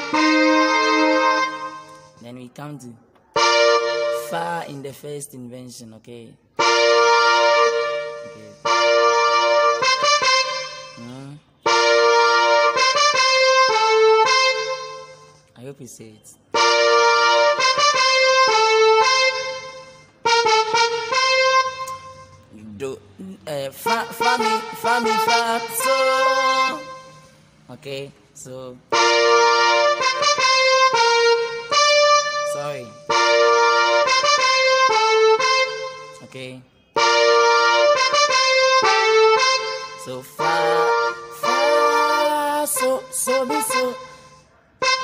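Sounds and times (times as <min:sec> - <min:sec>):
electronic keyboard chord: 0:00.0 - 0:02.3, 0:03.3 - 0:05.0, 0:06.5 - 0:15.6, 0:16.5 - 0:22.8, 0:23.6 - 0:27.4, 0:28.9 - 0:45.0.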